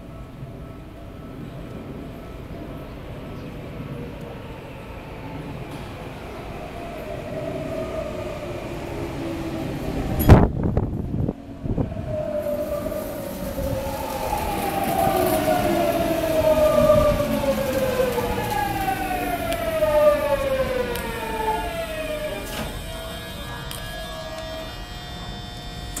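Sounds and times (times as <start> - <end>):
electric train inverter whine: 0.0 - 26.0
steady hum of standing train: 0.0 - 26.0.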